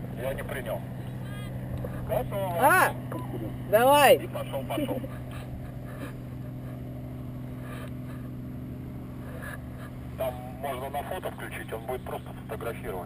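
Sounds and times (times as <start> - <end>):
low mechanical hum: 0.0 - 13.0.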